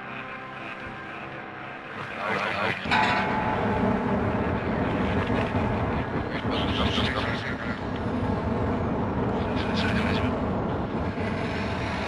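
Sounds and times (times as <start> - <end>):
dense wall of noise: 0.0 - 12.0
low droning tones: 0.0 - 12.0.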